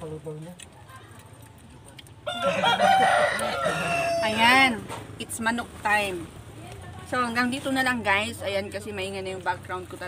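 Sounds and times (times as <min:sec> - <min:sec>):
rooster crowing: 0:02.2 - 0:04.7.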